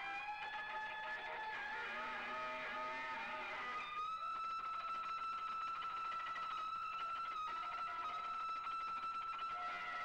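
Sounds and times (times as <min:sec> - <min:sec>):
electric guitar solo: 0:00.0 - 0:10.0.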